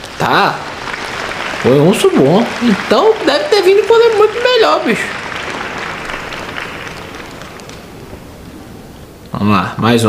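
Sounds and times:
audience applause: 0:00.0 - 0:09.2.

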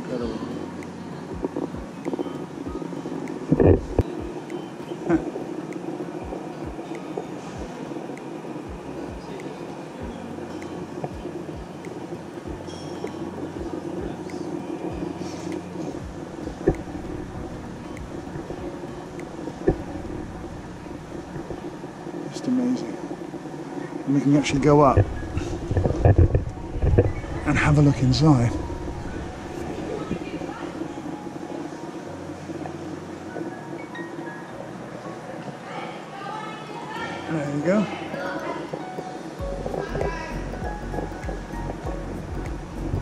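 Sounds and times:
low room noise of exhibition hall: 0:00.0 - 0:43.0.

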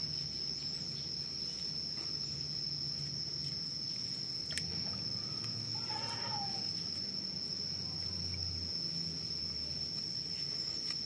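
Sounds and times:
insects trilling: 0:00.0 - 0:11.0.

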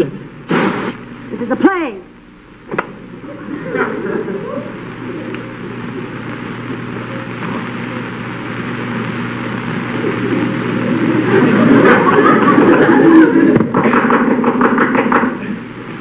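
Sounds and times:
audience laughing: 0:03.2 - 0:06.2, 0:09.9 - 0:14.0.

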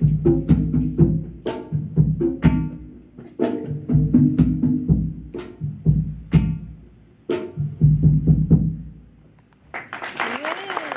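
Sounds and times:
audience cheering and applauding: 0:09.7 - 0:10.9.

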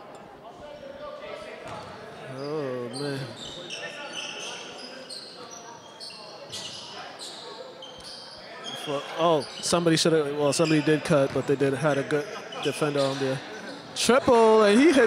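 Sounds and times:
sneaker squeaks: 0:01.6 - 0:14.0.

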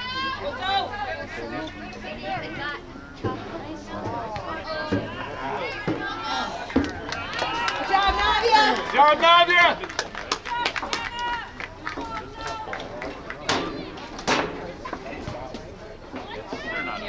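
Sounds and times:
voices shouting and calling: 0:00.0 - 0:17.0.

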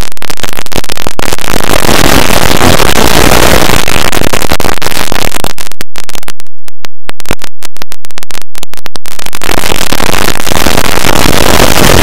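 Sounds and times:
distorted noisy wall of sound: 0:00.0 - 0:12.0.

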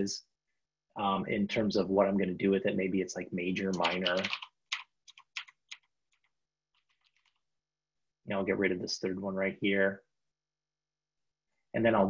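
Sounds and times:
computer keyboard typing: 0:03.7 - 0:07.4.

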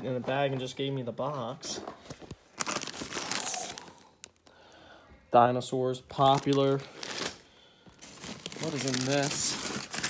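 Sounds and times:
plastic bags crinkling: 0:02.2 - 0:04.4, 0:06.2 - 0:10.0.

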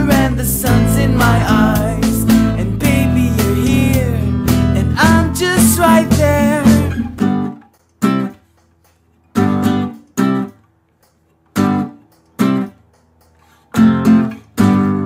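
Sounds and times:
acoustic guitar stopped chords: 0:00.0 - 0:08.4, 0:13.8 - 0:15.0.

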